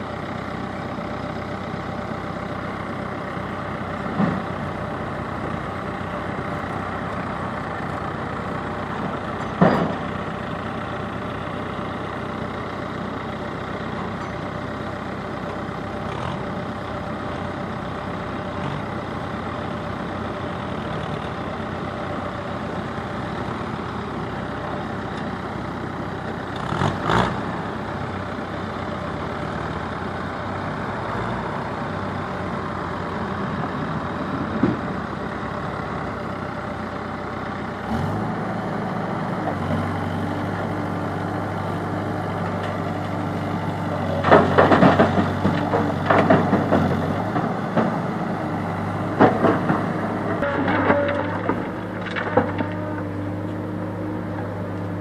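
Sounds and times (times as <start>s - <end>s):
diesel engines running: 0.0s - 55.0s
low engine hum: 0.0s - 55.0s
rocks clattering and scraping: 49.2s - 53.1s.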